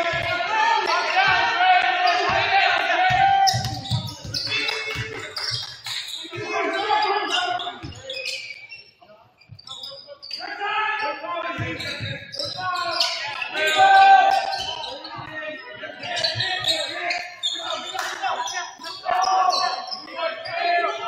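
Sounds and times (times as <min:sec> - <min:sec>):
people shouting: 0:00.0 - 0:04.6, 0:10.4 - 0:21.0
sneakers squeaking: 0:00.0 - 0:21.0
basketball dribbling on wooden floor: 0:02.3 - 0:05.7.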